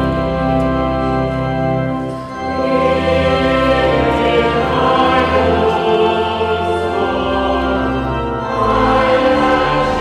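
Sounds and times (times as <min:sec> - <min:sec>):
choir singing a hymn: 0:00.0 - 0:10.0
organ accompaniment: 0:00.0 - 0:10.0.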